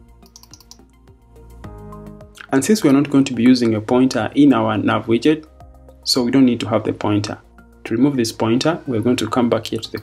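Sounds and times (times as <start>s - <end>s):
soft background music: 0.0s - 10.0s
keyboard key clicks: 0.3s - 0.8s.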